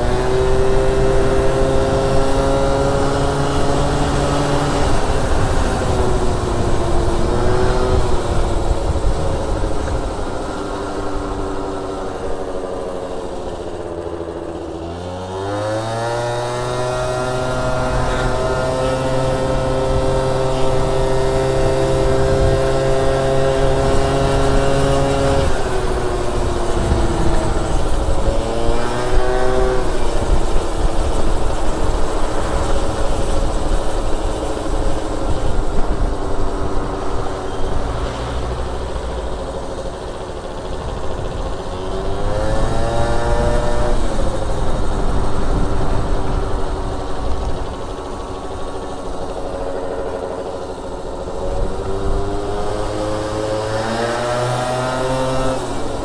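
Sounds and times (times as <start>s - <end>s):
scooter engine revving: 0.0s - 56.0s.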